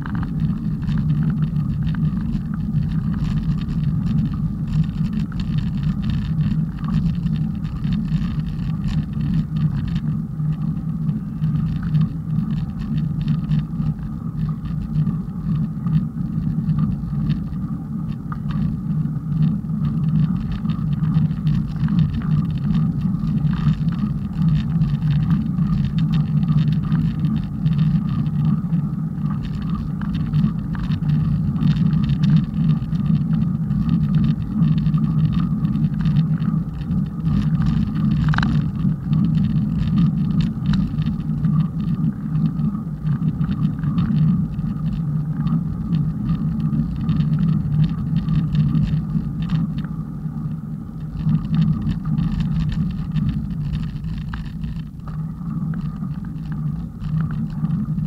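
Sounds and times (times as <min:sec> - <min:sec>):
wind on microphone: 0:00.0 - 0:58.0.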